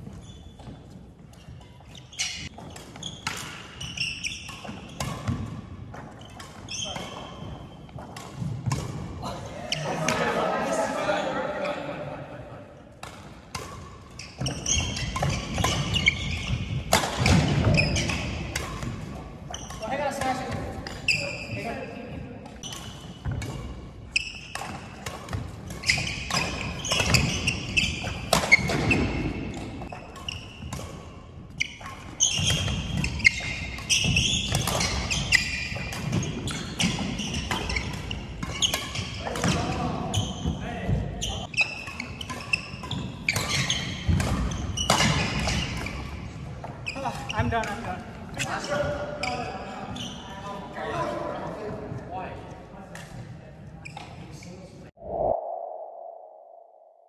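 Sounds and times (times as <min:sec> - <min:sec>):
voices in a hall: 0:09.2 - 0:13.0, 0:46.9 - 0:55.0.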